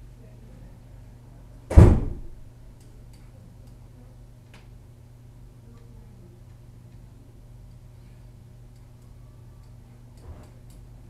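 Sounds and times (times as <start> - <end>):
low room hum: 0.0 - 11.0
loud thump: 1.7 - 2.4.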